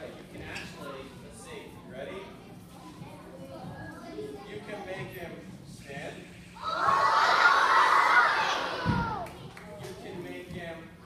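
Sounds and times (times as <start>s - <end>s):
children shouting together: 6.6s - 9.3s
thump: 8.8s - 9.0s.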